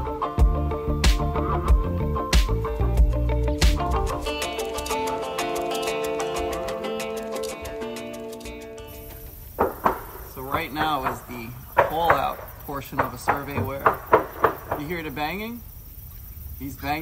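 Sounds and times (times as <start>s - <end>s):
hammer tapping boat hull: 9.1s - 15.2s.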